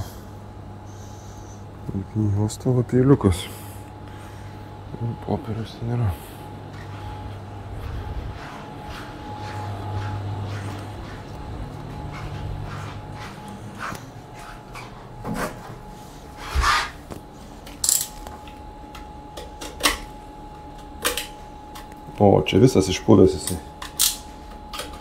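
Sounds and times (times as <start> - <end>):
steady low hum: 0.0 - 25.0
small tools clicking and knocking: 17.8 - 18.2.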